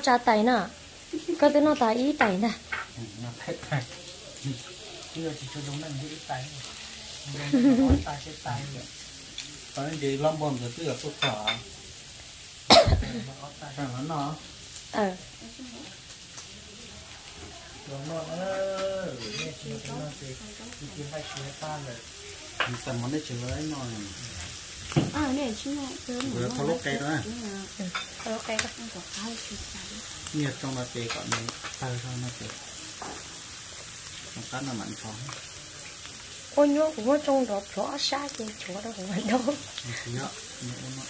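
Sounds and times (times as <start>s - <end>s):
hot pot sizzling: 0.0s - 41.0s
voices at a meal: 0.0s - 41.0s
person talking: 26.2s - 27.3s.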